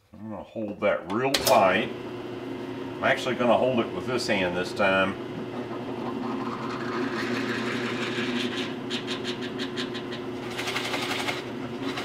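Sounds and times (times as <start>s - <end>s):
rapid rattle of drill bit: 10.5s - 12.0s.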